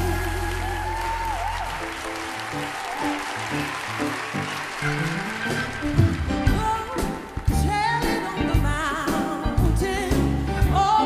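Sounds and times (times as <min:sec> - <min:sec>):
audience applauding: 0:00.0 - 0:07.5.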